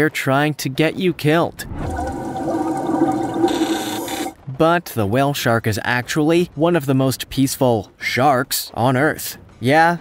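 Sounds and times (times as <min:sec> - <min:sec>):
underwater rushing and bubbling: 0:01.6 - 0:04.4.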